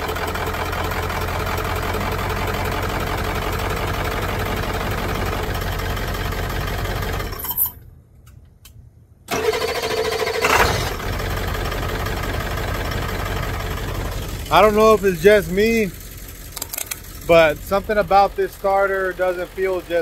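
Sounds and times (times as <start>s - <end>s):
pickup engine idling: 0.0s - 7.5s, 10.9s - 20.0s
engine starter cranking: 9.3s - 11.3s, 14.2s - 18.0s.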